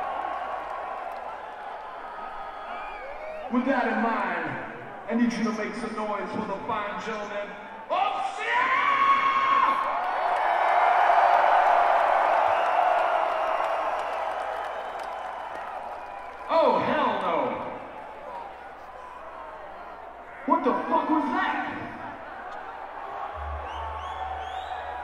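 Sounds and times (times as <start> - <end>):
crowd cheering and screaming: 0.0 - 3.5, 8.0 - 16.8, 17.4 - 25.0.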